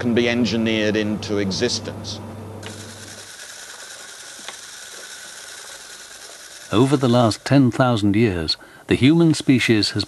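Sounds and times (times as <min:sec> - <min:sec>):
machinery whirring: 0:00.0 - 0:10.0
fine rapid clicking: 0:02.6 - 0:08.0, 0:09.1 - 0:10.0.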